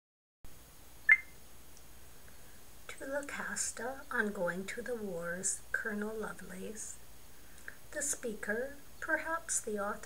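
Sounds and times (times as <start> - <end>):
faint background hiss: 0.5 - 10.0
short high electronic beep: 1.1 - 1.4.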